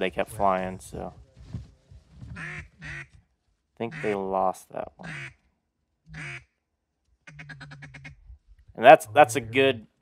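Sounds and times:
duck quacking: 2.4s - 3.1s, 3.9s - 4.2s, 5.0s - 5.4s, 6.1s - 6.5s, 7.2s - 8.2s.

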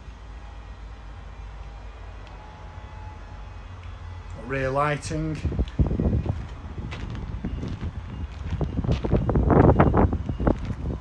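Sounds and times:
low rumble: 5.3s - 11.0s.

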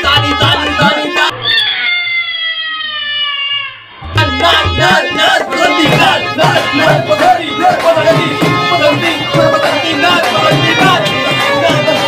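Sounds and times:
toddler crying: 1.3s - 3.9s.

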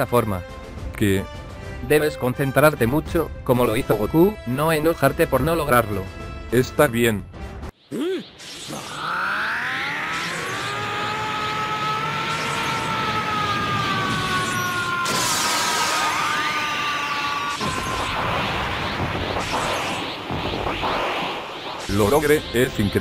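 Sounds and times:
rushing energy aura effect: 8.3s - 16.2s.

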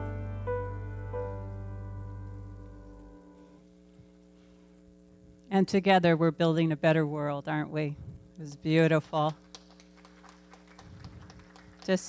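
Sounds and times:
steady hum: 0.0s - 12.0s
woman speaking: 5.5s - 9.4s.

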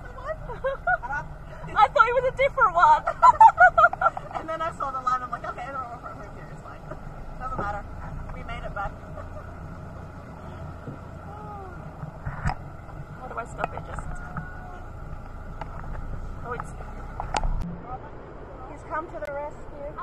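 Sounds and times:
low rumble: 0.0s - 20.0s
voices: 0.0s - 20.0s
woman laughing: 0.2s - 1.8s, 2.9s - 4.7s, 9.0s - 9.6s.

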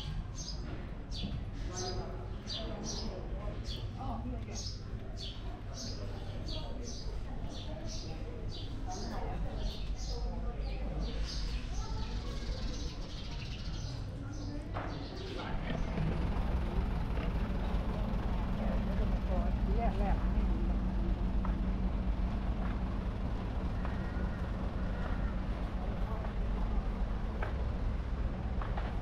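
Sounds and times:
people talking: 0.6s - 16.0s, 16.6s - 21.7s, 22.6s - 27.6s
vehicle engine idling: 15.2s - 29.0s.

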